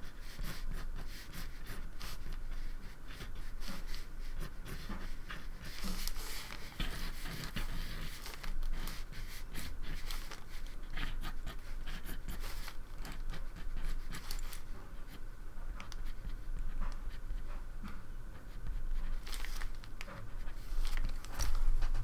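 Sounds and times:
pencil scratching on paper: 0.0 - 17.6, 18.3 - 22.0.

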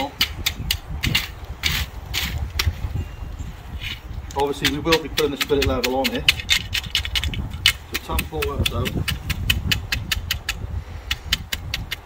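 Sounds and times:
rake scraping through wet concrete: 0.0 - 2.7, 3.7 - 9.1.

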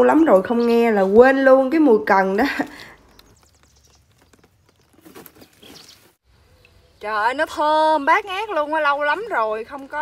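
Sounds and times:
rustling of leafy stems: 2.4 - 6.2.

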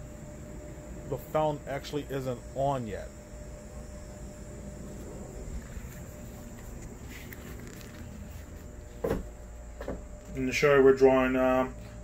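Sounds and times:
low outdoor rumble: 0.0 - 12.0
faint handling noises: 4.8 - 10.5
short thump: 9.0 - 10.1.

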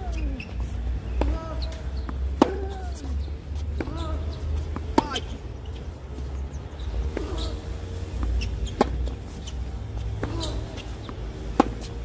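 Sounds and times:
tennis ball bouncing on court: 1.1 - 5.4, 6.8 - 12.0
tennis ball struck by racquet: 2.0 - 2.8, 4.7 - 5.3, 8.2 - 9.2, 10.2 - 12.0.

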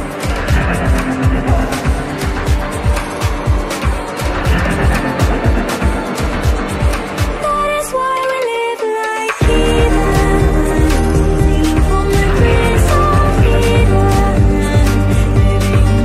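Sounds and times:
fast kick-drum beat: 0.0 - 7.6
held synth melody: 0.0 - 8.8
ticking hi-hats: 0.0 - 16.0.

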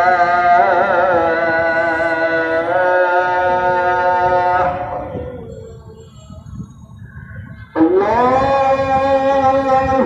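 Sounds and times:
person reciting melodically: 0.0 - 10.0.

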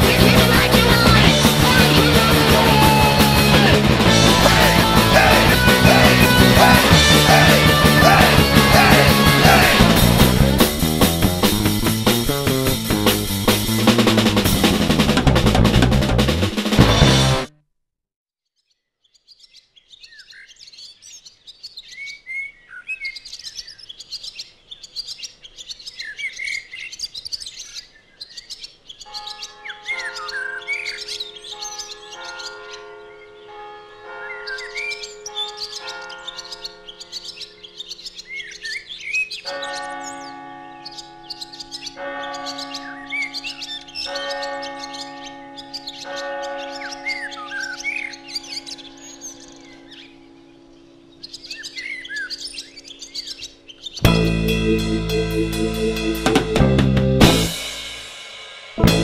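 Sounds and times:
birds chirping: 0.0 - 17.4, 18.8 - 59.0
slow held chords: 0.0 - 17.5, 54.0 - 59.0.

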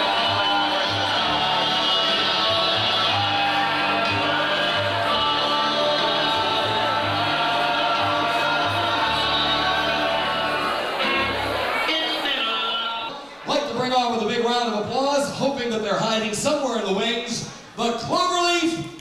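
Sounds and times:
person singing: 0.0 - 11.4
bass line: 0.0 - 11.7
live band playing: 0.0 - 13.3.

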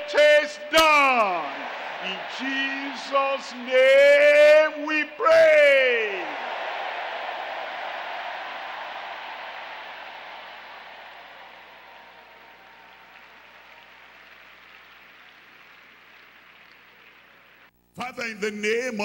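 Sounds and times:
crowd clapping: 0.0 - 4.6, 6.0 - 17.7.

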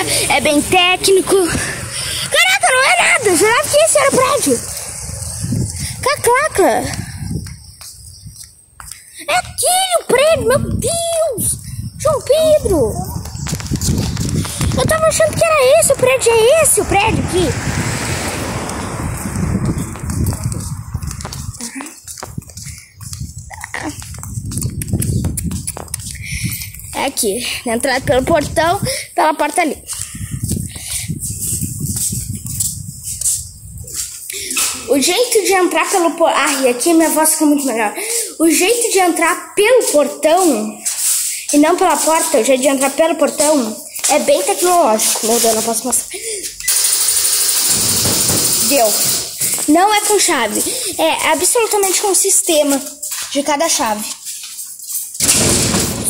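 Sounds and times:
footsteps on pavement: 0.0 - 46.7, 48.3 - 56.0
wind rumble on microphone: 3.1 - 8.5, 10.3 - 29.1, 29.8 - 34.9, 47.6 - 49.7
garage door rattling open: 46.8 - 49.5, 55.2 - 56.0.

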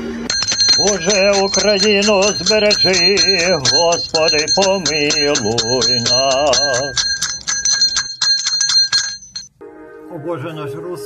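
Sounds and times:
small bell rung rapidly: 0.3 - 9.5.

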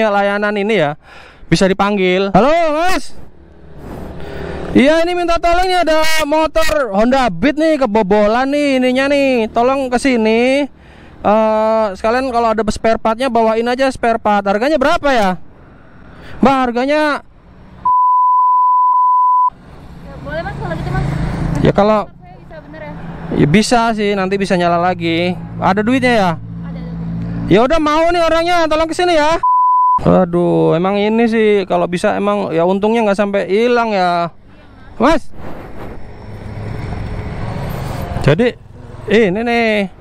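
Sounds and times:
censor bleep: 17.8 - 19.6, 29.4 - 30.4
motor scooter approaching: 19.8 - 23.3, 36.0 - 39.4.

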